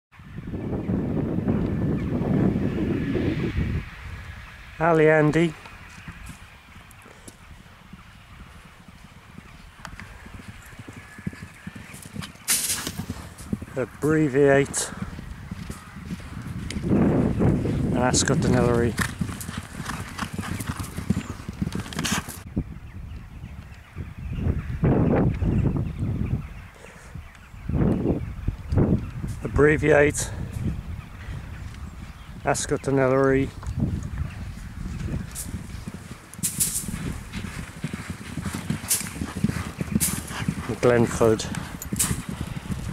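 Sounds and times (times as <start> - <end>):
wind buffeting microphone: 0.1 - 42.9
horses galloping on grass: 0.2 - 42.9.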